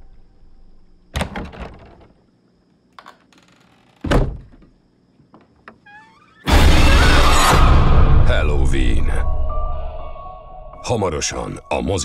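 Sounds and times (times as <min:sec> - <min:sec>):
closet door thud: 0:01.1 - 0:02.2, 0:04.0 - 0:04.8.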